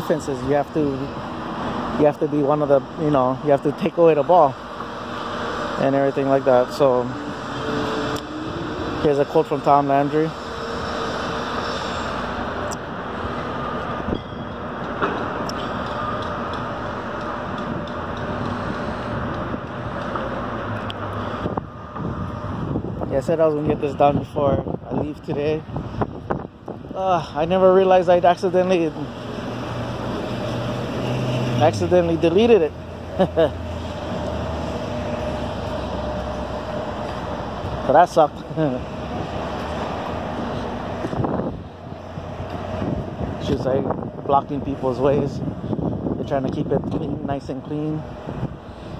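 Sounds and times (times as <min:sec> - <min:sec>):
outdoor background hum: 0:00.0 - 0:48.9.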